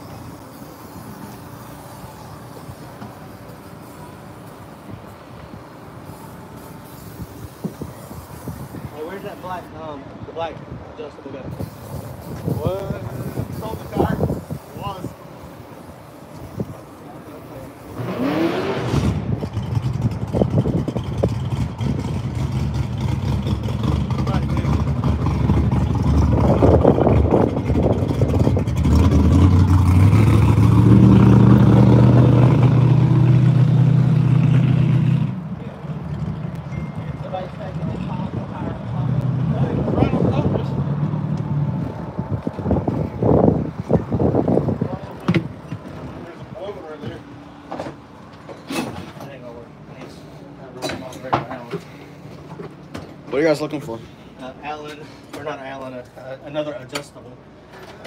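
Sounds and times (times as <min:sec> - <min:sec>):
lower engine sound: 0:12.7 - 0:48.3.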